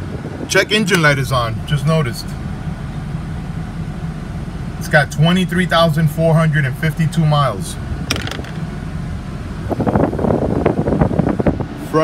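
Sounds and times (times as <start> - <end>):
air conditioning blowing: 0.0 - 12.0
diesel engine idling: 0.0 - 12.0
wind buffeting microphone: 9.6 - 11.8.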